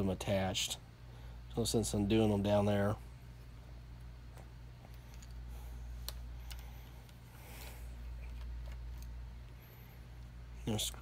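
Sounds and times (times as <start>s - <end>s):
steady low hum: 0.0s - 11.0s
small parts clicking and tapping: 4.3s - 7.2s.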